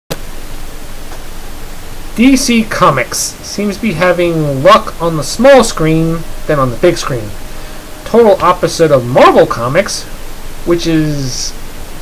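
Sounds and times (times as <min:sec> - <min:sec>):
recording hiss: 0:00.1 - 0:12.0.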